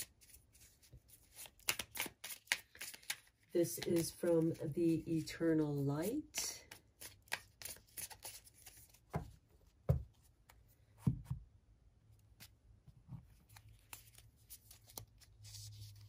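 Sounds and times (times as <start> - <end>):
cards tapping and rustling: 1.3 - 4.6, 6.7 - 10.2.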